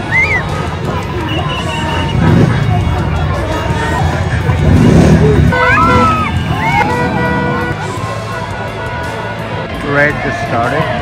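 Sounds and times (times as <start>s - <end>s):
motorcycle engines riding past: 0.0s - 11.0s.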